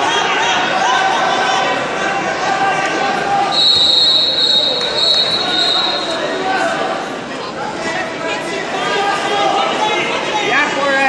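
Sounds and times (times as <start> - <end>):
spectators shouting: 0.0 - 10.3
high steady whistle: 3.5 - 6.3.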